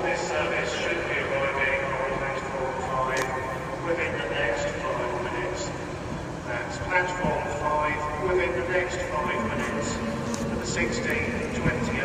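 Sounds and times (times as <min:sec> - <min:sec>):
public address announcement: 0:00.0 - 0:12.0.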